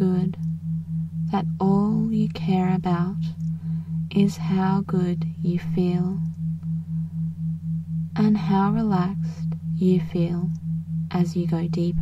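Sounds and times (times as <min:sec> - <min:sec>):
person narrating: 0:00.0 - 0:00.4, 0:01.3 - 0:03.4, 0:04.1 - 0:06.2, 0:08.2 - 0:10.5, 0:11.1 - 0:12.0
pulsing synthetic tone: 0:00.0 - 0:12.0
steady synthetic hum: 0:00.0 - 0:12.0.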